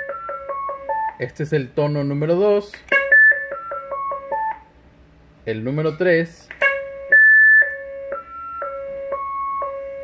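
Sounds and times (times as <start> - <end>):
radio roger beep tones: 7.1 - 9.9.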